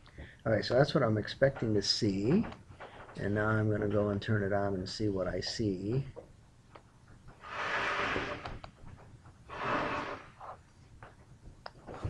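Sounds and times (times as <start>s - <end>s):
hissing breaths: 9.5s - 10.6s.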